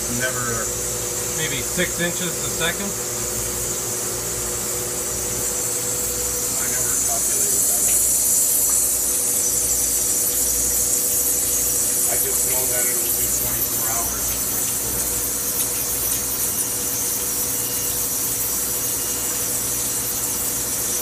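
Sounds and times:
machine hum: 0.0s - 21.0s
high-pitched cutting hiss: 6.5s - 21.0s.

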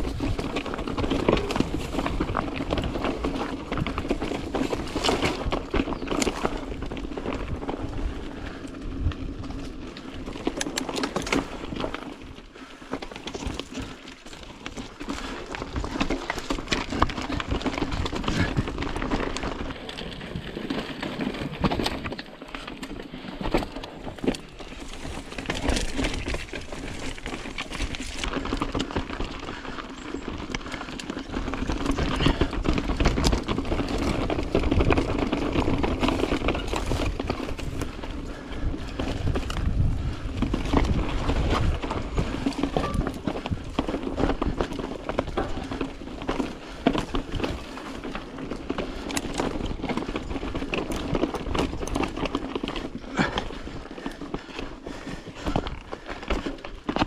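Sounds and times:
bike clattering over rocks: 0.0s - 12.2s, 12.8s - 57.0s
tyres crunching over loose stones: 0.0s - 57.0s.

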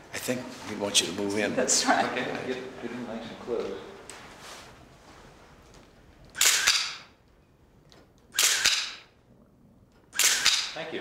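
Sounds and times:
camera shutter click and whirr: 6.3s - 7.2s, 8.3s - 9.1s, 10.1s - 10.8s.

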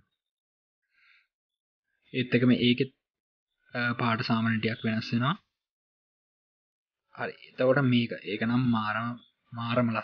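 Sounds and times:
man talking: 2.2s - 3.0s, 3.8s - 5.5s, 7.2s - 10.0s.

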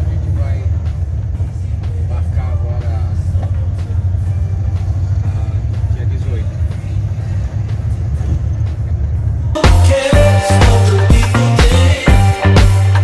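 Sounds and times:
van engine and road rumble: 0.0s - 13.0s.

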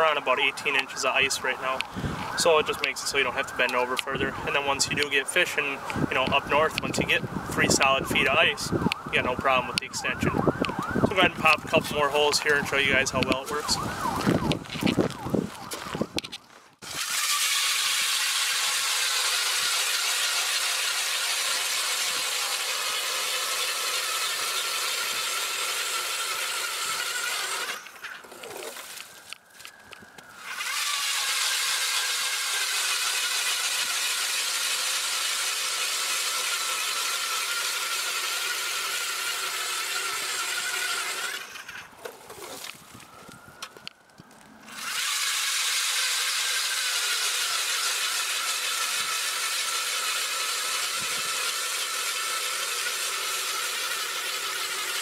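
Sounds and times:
electric motor whine: 5.8s - 42.0s, 42.6s - 55.0s
blade scraping ice: 15.7s - 29.7s, 38.6s - 43.0s.

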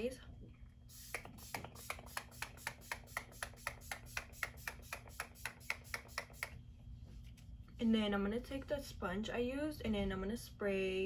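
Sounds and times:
spray bottle misting: 0.9s - 6.6s.

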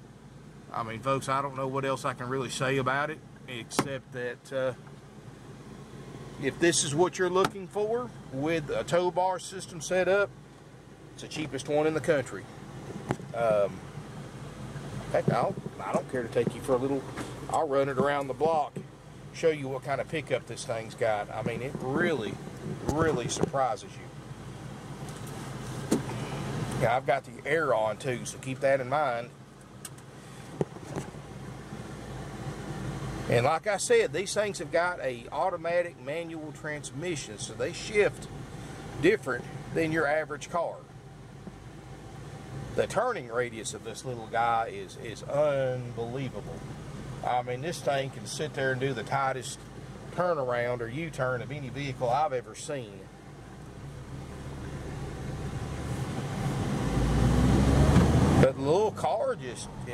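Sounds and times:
air-conditioning blower hum: 0.0s - 59.9s
car engine accelerating: 53.1s - 59.9s.

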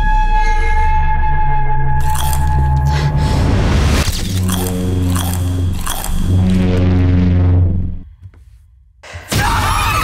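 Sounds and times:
popcorn being chewed: 2.0s - 2.7s, 4.3s - 6.6s.

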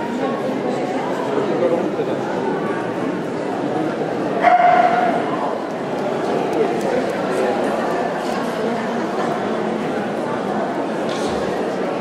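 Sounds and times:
crowd chatter in a hall: 0.0s - 12.0s.

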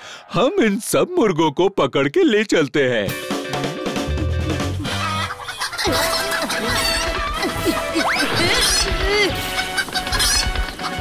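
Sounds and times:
chickens clucking: 4.8s - 11.0s.

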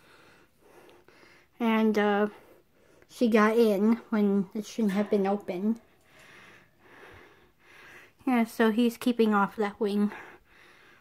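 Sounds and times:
person breathing softly: 0.0s - 1.6s, 5.9s - 8.2s, 10.1s - 11.0s.

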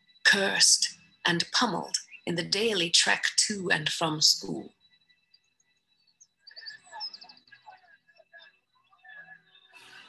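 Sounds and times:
faint birdsong: 0.0s - 10.0s.

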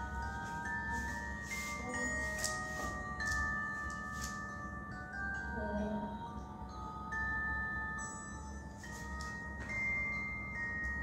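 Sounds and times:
bell-like chime music: 0.0s - 11.0s.

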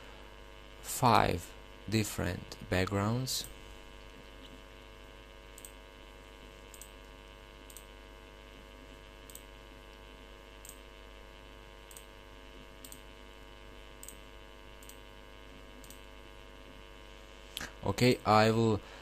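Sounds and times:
steady electrical hum: 0.0s - 19.0s
faint computer mouse clicks: 5.6s - 5.8s, 6.7s - 6.9s, 7.7s - 7.9s, 11.9s - 12.1s, 12.8s - 13.0s, 14.0s - 14.2s, 14.8s - 15.0s.

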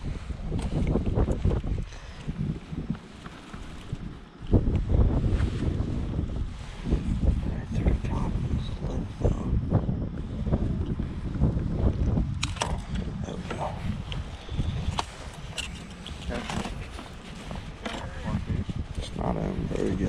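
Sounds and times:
wind rumble on microphone: 0.0s - 20.0s
sharp clicks and rustles: 12.3s - 19.1s.

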